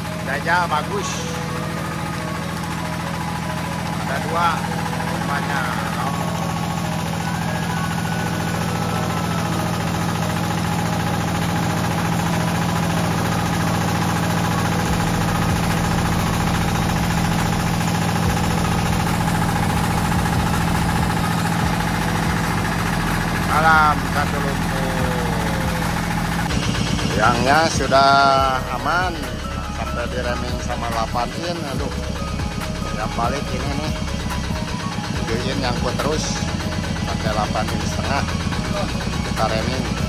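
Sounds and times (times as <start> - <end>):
diesel engine running: 0.0 - 40.0.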